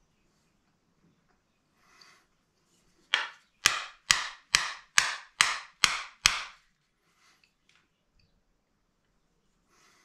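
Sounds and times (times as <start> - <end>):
wooden mallet tapping wooden handle: 3.1 - 6.6.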